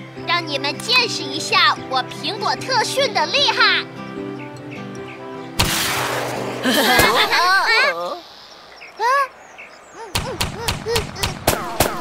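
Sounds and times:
sharp crack: 5.6 - 7.4, 10.1 - 12.0
rising and falling cry: 6.5 - 12.0.

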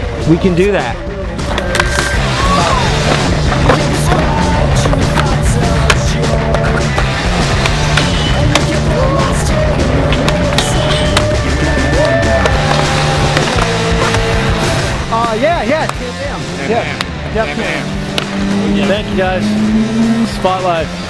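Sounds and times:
skateboards rolling on concrete: 0.0 - 19.0
music with steady bass line: 0.0 - 21.0.

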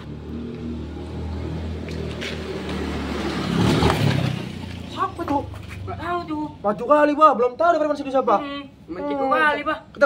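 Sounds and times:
motor scooter passing by: 0.0 - 6.0.

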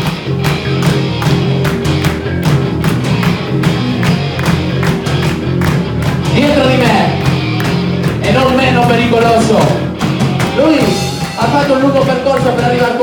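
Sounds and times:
bass guitar: 0.0 - 13.0
drum kit beat: 0.0 - 13.0
electric guitar: 0.0 - 13.0.

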